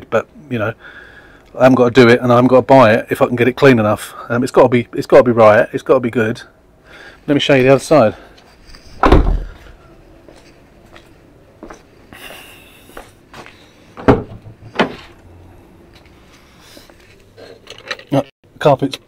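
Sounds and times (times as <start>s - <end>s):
car door heavy thump: 9.0s - 9.6s.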